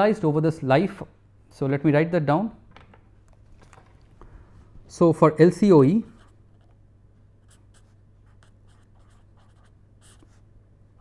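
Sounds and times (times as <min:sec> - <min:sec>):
pen scratching on paper: 0:07.4 - 0:10.4.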